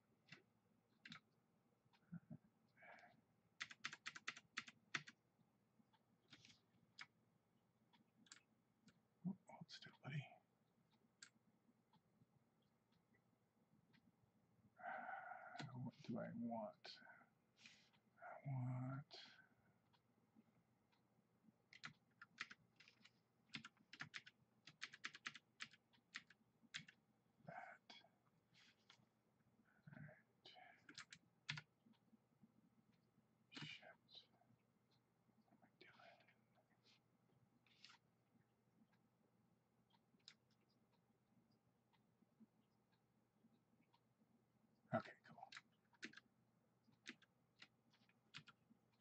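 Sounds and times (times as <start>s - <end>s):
keyboard keystrokes: 21.7s - 27.0s.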